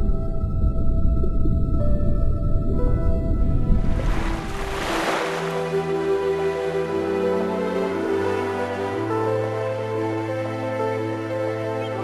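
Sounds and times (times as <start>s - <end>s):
slow ambient music: 0.0s - 12.0s.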